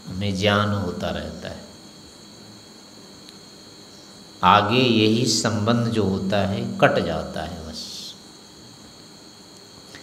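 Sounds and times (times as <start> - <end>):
crickets trilling: 0.0 - 10.0
low background noise: 0.0 - 10.0.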